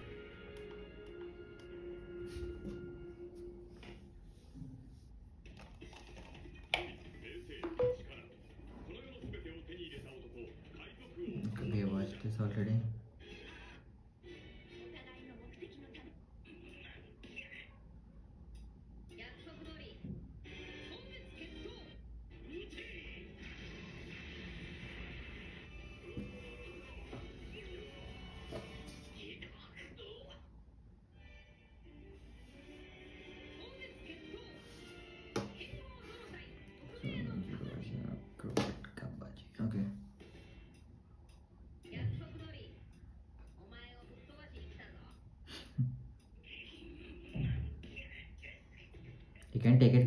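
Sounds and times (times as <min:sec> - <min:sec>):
background music: 0:00.0 - 0:04.6, 0:23.2 - 0:29.3, 0:31.2 - 0:46.4.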